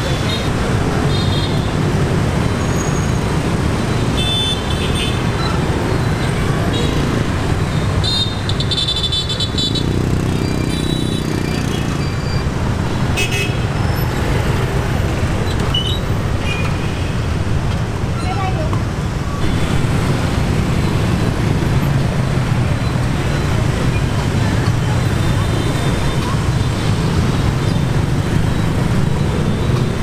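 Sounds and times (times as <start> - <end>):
motorbike and car traffic rumble: 0.0 - 30.0.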